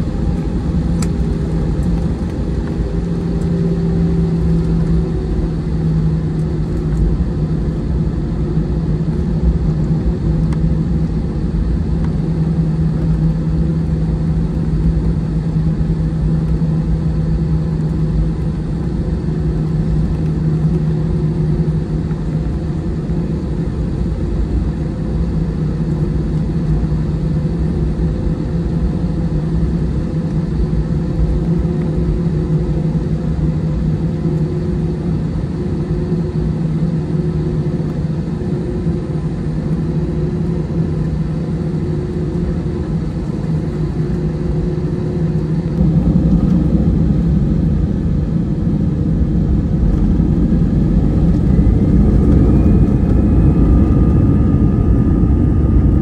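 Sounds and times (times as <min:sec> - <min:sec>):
jet engines humming in cabin: 0:00.0 - 0:56.0.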